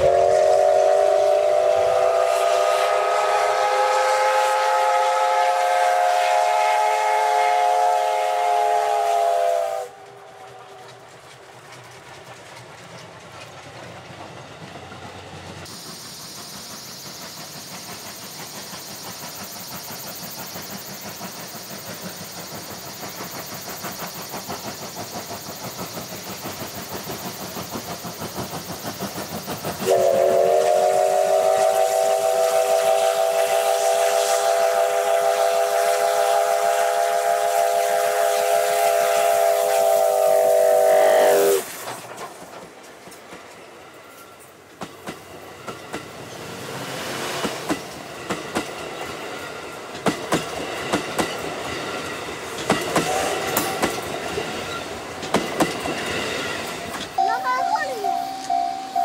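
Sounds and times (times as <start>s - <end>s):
steam whistle blast: 0.0s - 10.5s, 29.8s - 41.7s, 53.0s - 53.9s
steam locomotive exhaust chuffs: 0.0s - 59.0s
train coaches rumbling past: 0.0s - 59.0s.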